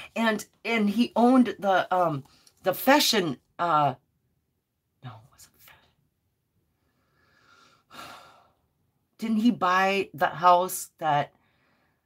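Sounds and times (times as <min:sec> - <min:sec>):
person inhaling: 0:06.8 - 0:08.6.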